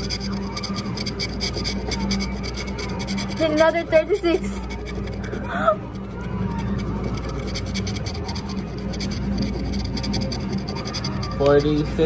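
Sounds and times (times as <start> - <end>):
coin scratching lottery ticket: 0.0 - 12.0.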